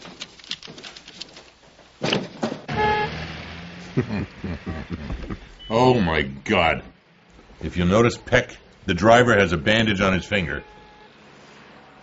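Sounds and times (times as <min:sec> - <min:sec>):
vehicle engine rumbling: 0:02.6 - 0:12.0
car horn: 0:02.7 - 0:03.5, 0:09.8 - 0:12.0.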